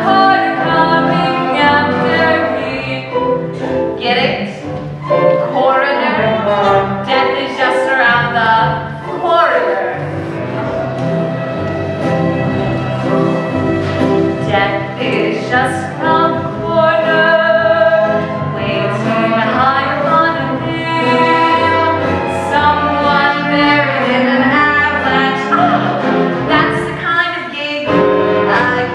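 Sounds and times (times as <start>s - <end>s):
woman singing with vibrato: 0.0s - 3.3s, 5.4s - 10.0s, 14.4s - 28.9s
string accompaniment: 0.0s - 28.9s.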